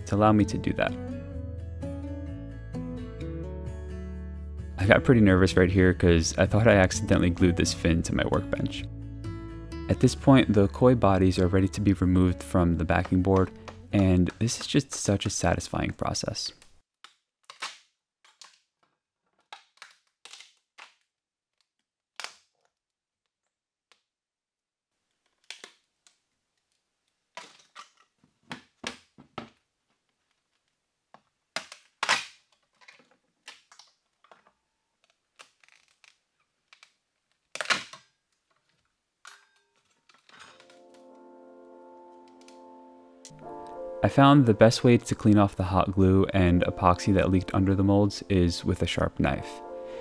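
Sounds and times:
soft background music: 0.0 - 16.0, 40.5 - 50.0
glued joints snapping loose: 30.4 - 40.9.

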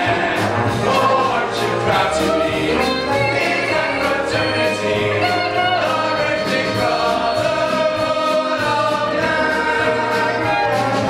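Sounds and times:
instrumental accompaniment: 0.0 - 11.0
male ensemble singing: 0.0 - 11.0.

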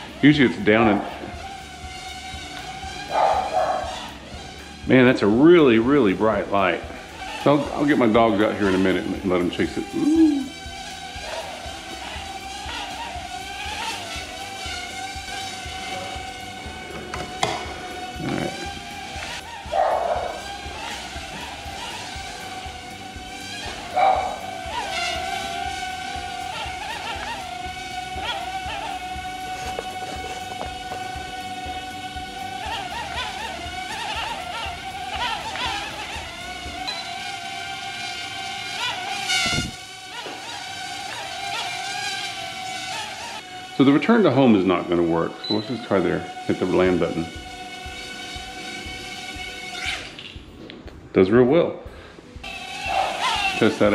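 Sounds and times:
drone propellers whining: 0.0 - 50.9, 52.2 - 53.9.

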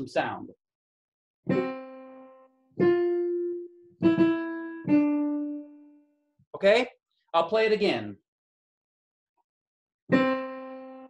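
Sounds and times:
digital piano notes: 1.4 - 6.1, 10.1 - 11.0.

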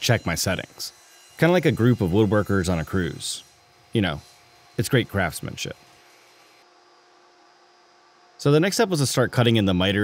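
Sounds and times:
faint hiss and electrical hum: 3.4 - 10.0.

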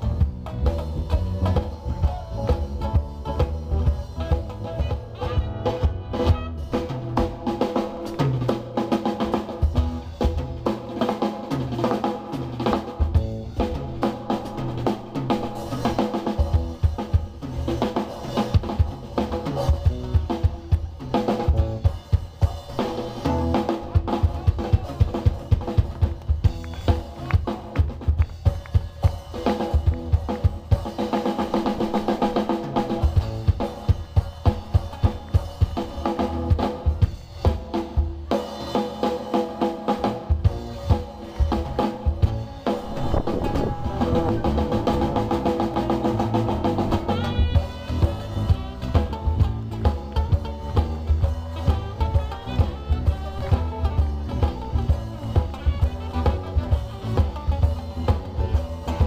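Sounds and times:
acoustic guitar playing: 0.0 - 59.0
drum kit kick and snare: 0.0 - 59.0.

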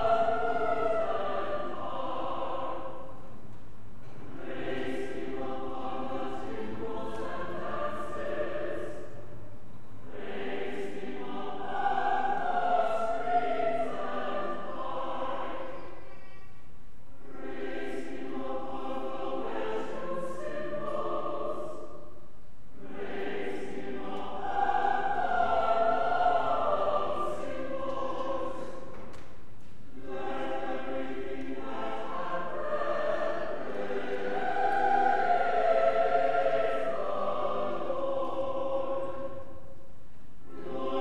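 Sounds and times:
church choir singing: 0.0 - 41.0.

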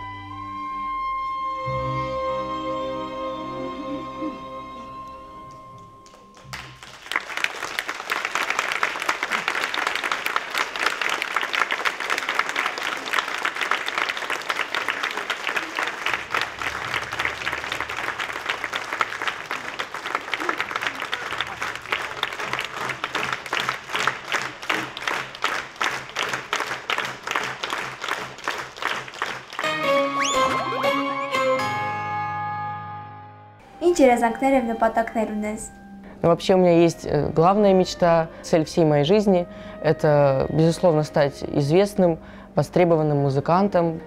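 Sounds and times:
music: 0.0 - 8.2, 15.4 - 44.0
rhythmic clapping in unison: 5.4 - 31.0
audience applauding: 5.5 - 31.4.

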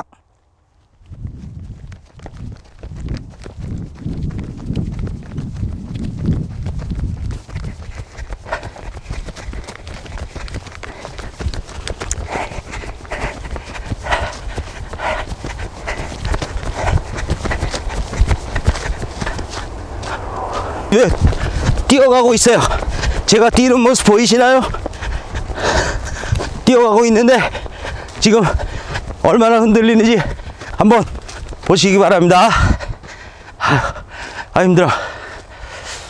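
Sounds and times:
running footsteps on dirt: 0.0 - 36.0
wind buffeting microphone: 0.6 - 36.0.

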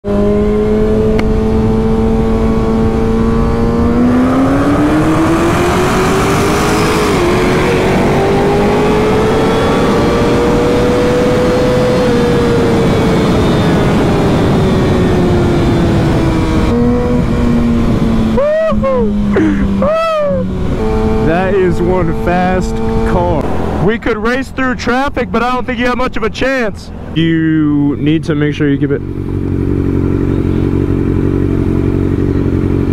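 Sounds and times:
motorcycle engine revving: 0.0 - 24.9, 27.6 - 32.9
wind noise: 0.1 - 28.3.

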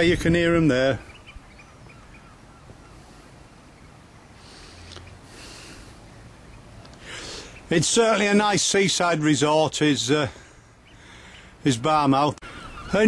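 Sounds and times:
birds piping faintly: 0.0 - 13.0.

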